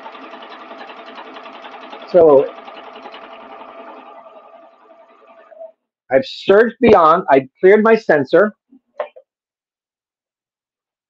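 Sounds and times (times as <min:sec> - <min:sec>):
serger stitching fabric: 0:00.0 - 0:05.7.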